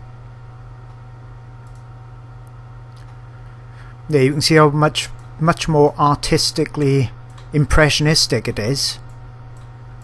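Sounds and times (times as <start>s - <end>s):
steady low hum: 0.0s - 10.0s
computer clicks: 1.6s - 1.9s, 7.2s - 7.6s.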